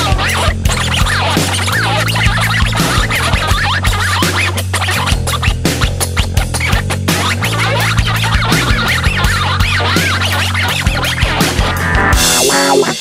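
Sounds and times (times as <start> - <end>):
acoustic guitar scratch-style solo: 0.0 - 13.0
drum and bass backing track: 0.0 - 13.0.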